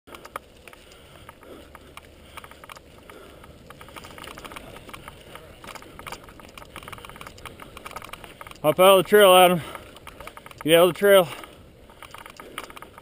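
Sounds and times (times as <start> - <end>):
bike rattling: 0.1 - 13.0
bike tyres on dirt and leaves: 0.1 - 13.0.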